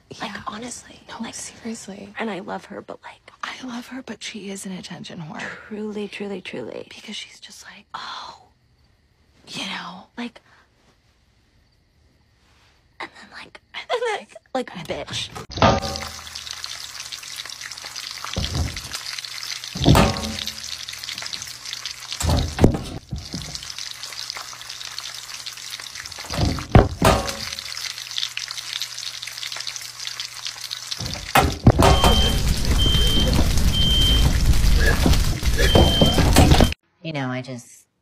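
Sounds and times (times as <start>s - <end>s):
short high beeps: 31.8s - 34.3s.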